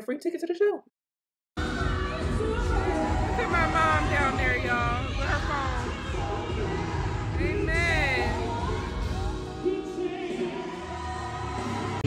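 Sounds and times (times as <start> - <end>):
gospel choir singing: 1.6 - 12.0.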